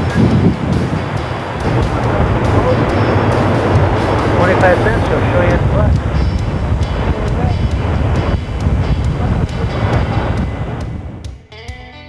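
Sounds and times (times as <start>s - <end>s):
wind rumbling on microphone: 0.0s - 11.4s
faint voices: 1.1s - 10.9s.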